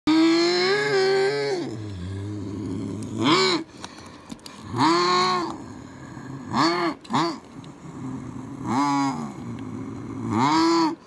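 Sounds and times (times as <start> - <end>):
person imitating engine noises: 0.1 - 3.8, 4.5 - 11.0.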